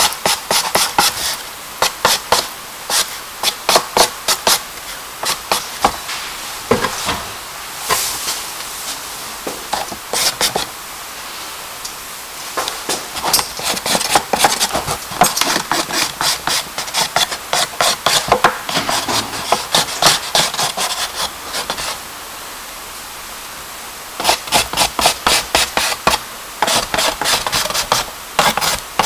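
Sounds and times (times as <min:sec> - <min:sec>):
charcoal scratching on paper: 0:00.2 - 0:04.6, 0:09.7 - 0:10.7, 0:13.2 - 0:22.0, 0:24.2 - 0:29.0.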